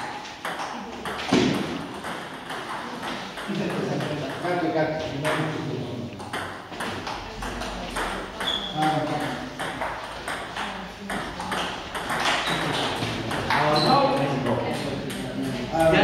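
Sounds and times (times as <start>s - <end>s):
table tennis balls clicking: 0.0s - 4.6s, 5.2s - 16.0s
men talking: 3.4s - 6.2s, 12.6s - 16.0s.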